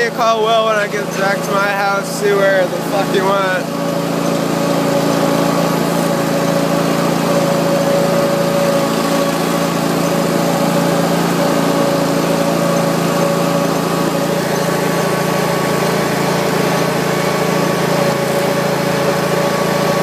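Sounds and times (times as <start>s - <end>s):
mower engine running: 0.0s - 20.0s.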